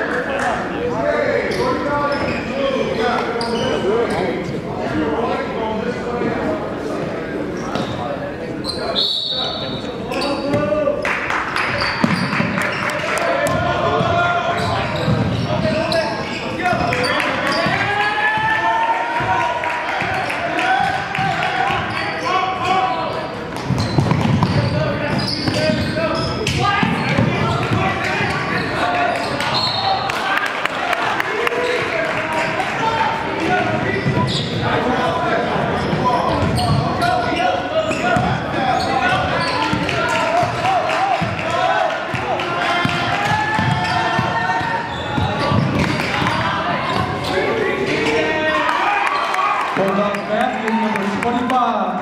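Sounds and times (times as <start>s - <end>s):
people talking and calling out: 0.0s - 52.0s
basketball bouncing on court: 11.6s - 12.8s, 13.4s - 15.8s, 23.5s - 28.1s, 35.8s - 36.9s, 38.1s - 38.5s, 42.8s - 47.3s.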